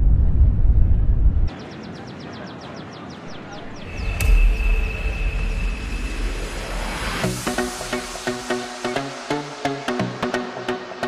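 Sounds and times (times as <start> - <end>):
deep sub-bass rumble: 0.0 - 1.5
swell of hiss: 4.2 - 9.3.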